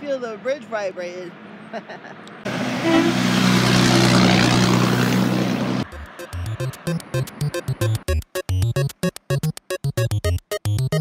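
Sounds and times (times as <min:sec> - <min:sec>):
road noise: 0:00.0 - 0:09.7
heavy truck driving past: 0:02.5 - 0:08.0
rhythmic background music: 0:05.8 - 0:11.0.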